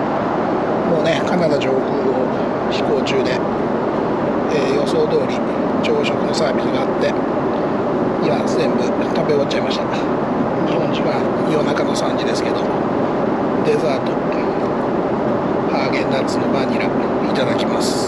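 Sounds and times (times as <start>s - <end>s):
airliner cabin engine rush: 0.0s - 18.0s
faint voices: 0.8s - 3.6s, 4.4s - 18.0s.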